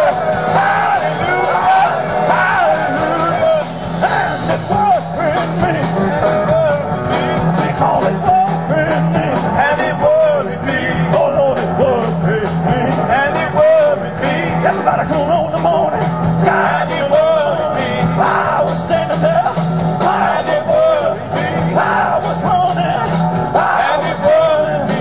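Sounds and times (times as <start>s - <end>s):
blues-rock band playing: 0.0s - 25.0s.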